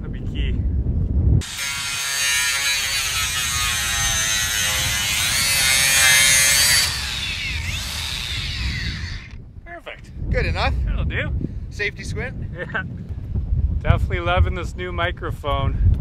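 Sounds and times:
angle grinder cutting sheet metal: 1.4s - 9.4s.

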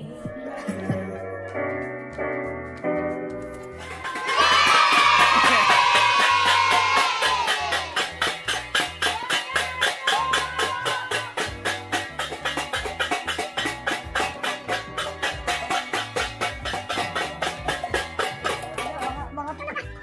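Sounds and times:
music with steady bass: 0.0s - 20.0s
metal pot lids clanging: 7.7s - 19.2s.

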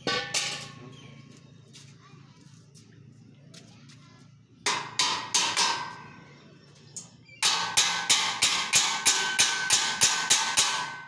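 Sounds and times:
hammer striking metal frame: 0.0s - 0.8s, 4.6s - 6.1s, 7.4s - 11.0s.

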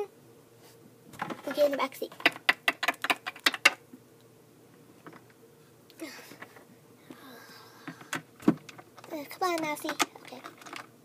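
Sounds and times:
plastic toys clacking: 1.2s - 3.8s, 8.0s - 10.9s.

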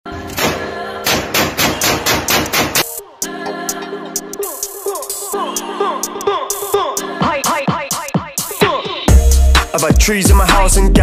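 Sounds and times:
music bed: 0.1s - 11.0s.

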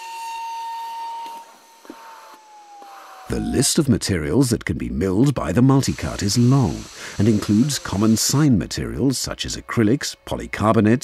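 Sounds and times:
wood cutting hiss: 0.0s - 4.4s, 5.1s - 10.2s
milling spindle whine: 5.3s - 11.0s.

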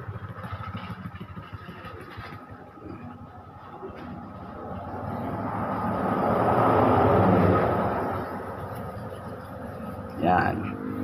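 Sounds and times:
passing vehicle rumble: 0.0s - 11.0s.

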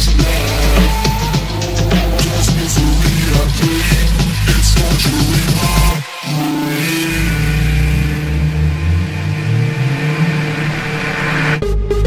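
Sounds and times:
steady low bass: 0.0s - 6.0s, 6.6s - 12.0s
held synth notes: 0.0s - 11.6s.

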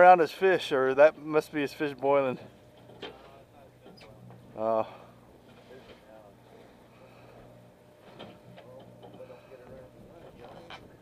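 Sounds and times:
boat machinery hum: 0.0s - 11.0s.

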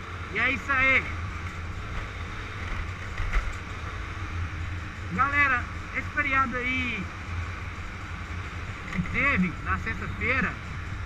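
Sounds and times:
road and wind noise: 0.0s - 11.0s
scooter engine running: 0.0s - 11.0s.

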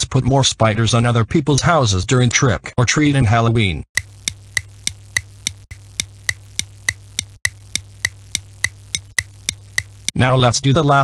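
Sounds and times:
low steady hum: 4.0s - 10.1s
sharp ticking: 4.0s - 10.2s.

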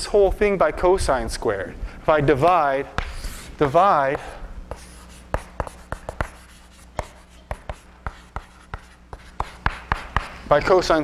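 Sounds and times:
chalk tapping on blackboard: 3.0s - 10.7s.

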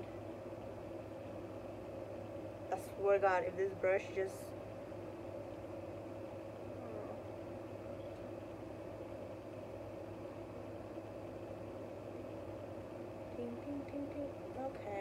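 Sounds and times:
steady background hum: 0.0s - 15.0s.

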